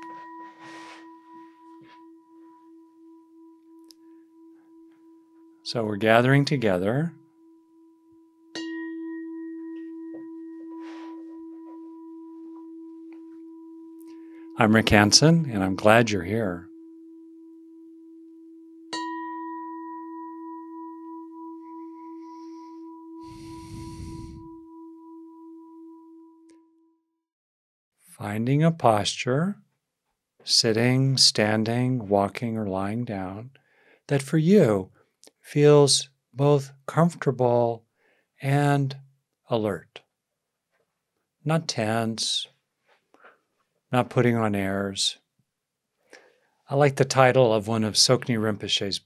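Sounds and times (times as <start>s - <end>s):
singing bowl ringing: 0.0s - 27.0s.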